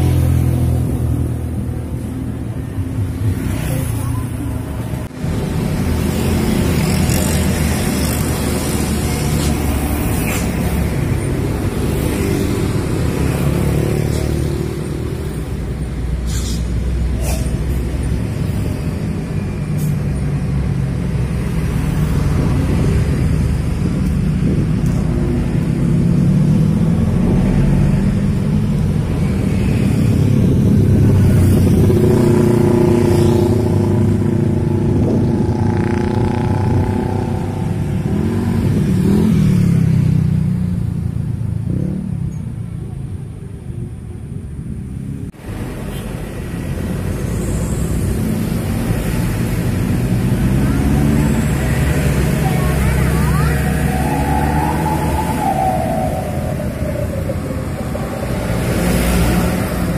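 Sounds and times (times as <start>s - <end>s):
motorcycles passing: 0.0s - 16.2s, 17.8s - 44.0s, 44.6s - 59.9s
cars passing: 0.0s - 59.9s
trucks passing: 0.0s - 59.9s.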